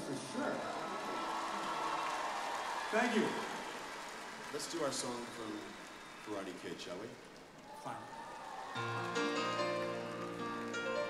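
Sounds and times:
audience applause: 0.0 - 11.0.

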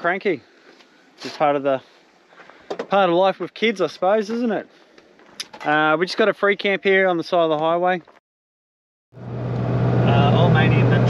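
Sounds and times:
car engine and road drone: 9.2 - 11.0.

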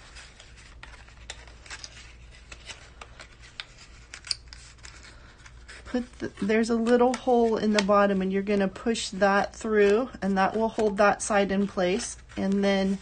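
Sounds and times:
cardstock rustling and crackling: 0.0 - 13.0.

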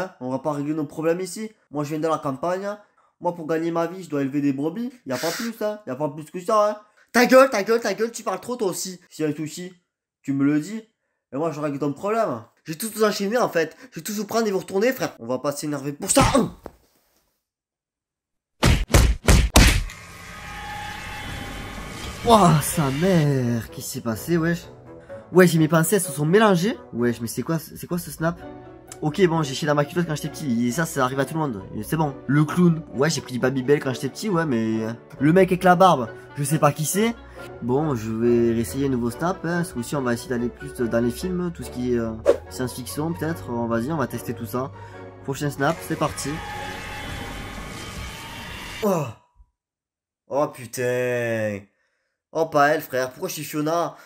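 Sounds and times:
man saying oh: 5.1 - 5.5, 48.8 - 49.2
rumbling drone transition effect: 19.9 - 23.4
background music: 20.0 - 48.6.

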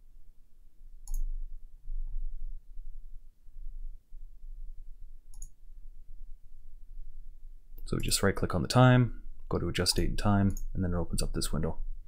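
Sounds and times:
low steady rumble: 0.0 - 12.0
computer mouse clicks: 1.0 - 1.3, 5.3 - 5.6, 9.9 - 10.7.

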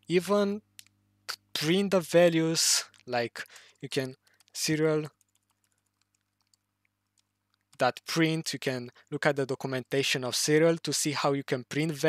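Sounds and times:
computer keyboard typing: 2.8 - 7.8.

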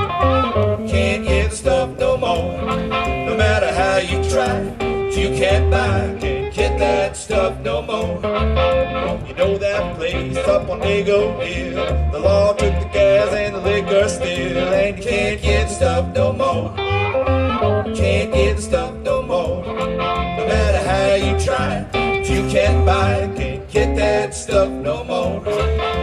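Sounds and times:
electric guitar: 0.0 - 26.0
harmonica bending held notes: 0.0 - 26.0
upright double bass: 0.0 - 26.0.

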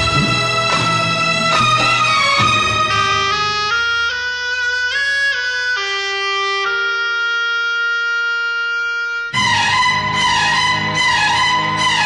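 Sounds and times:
film song accompaniment: 0.0 - 5.0, 9.3 - 12.0.

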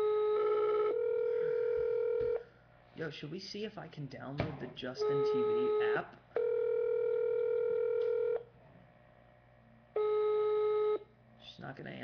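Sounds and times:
telephone ringback tone: 0.0 - 2.4, 6.4 - 8.4, 10.0 - 11.0.

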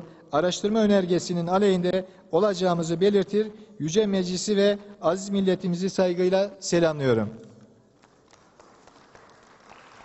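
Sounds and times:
large hall background noise: 0.0 - 10.0.

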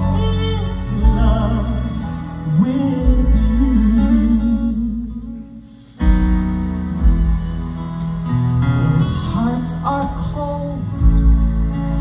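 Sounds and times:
person singing: 0.0 - 5.8
gospel band playing: 0.0 - 12.0.

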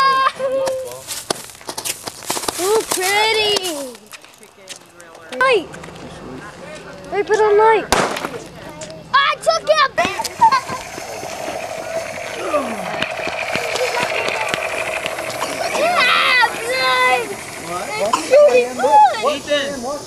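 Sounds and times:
children calling out: 9.2 - 19.5
firework fountain hissing: 9.4 - 20.0
held tone: 10.1 - 19.6.

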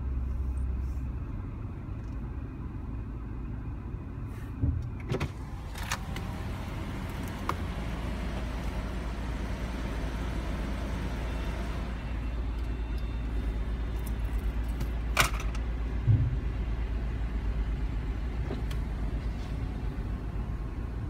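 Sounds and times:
car engine idling: 5.3 - 21.0.

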